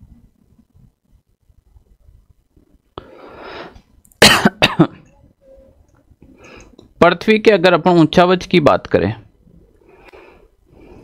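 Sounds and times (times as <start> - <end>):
soft breath in: 3.0 - 3.8, 9.8 - 11.0
man coughing: 4.2 - 5.0.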